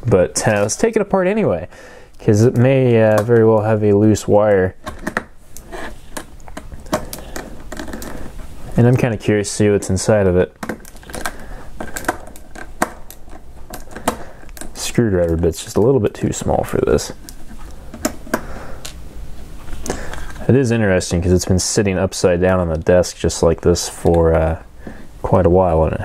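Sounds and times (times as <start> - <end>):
low steady background noise: 0.0 - 26.0.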